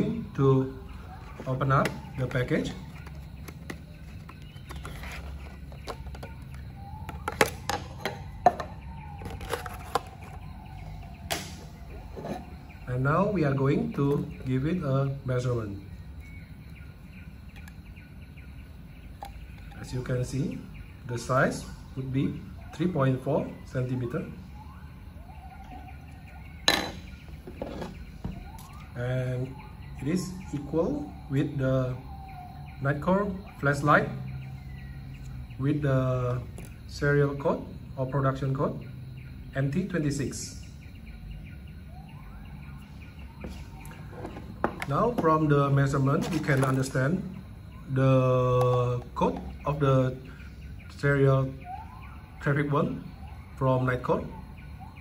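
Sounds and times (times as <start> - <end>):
tools handled on a table: 26.7 - 28.8.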